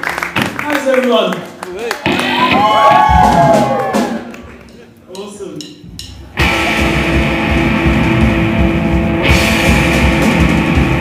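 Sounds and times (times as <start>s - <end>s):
electric guitars: 2.0s - 4.3s, 6.3s - 11.0s
drum kit: 2.0s - 11.0s
bass guitar: 6.1s - 11.0s.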